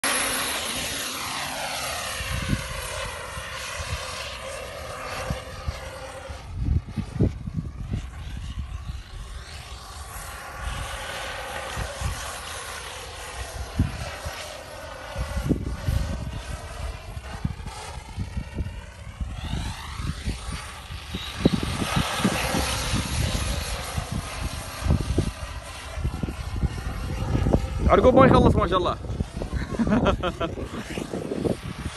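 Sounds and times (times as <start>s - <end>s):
wind gusting on microphone: 0.0s - 31.9s.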